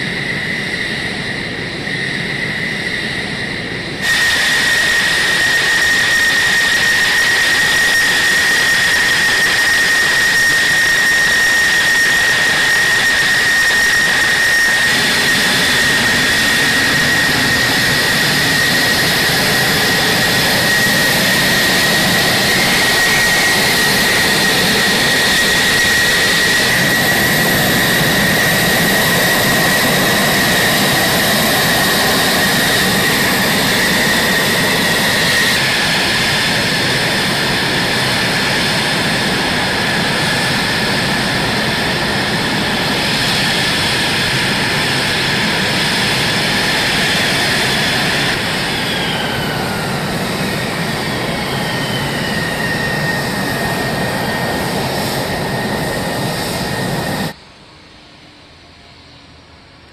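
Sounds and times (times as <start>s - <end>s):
jet engine whining at idle: 0.0s - 59.9s.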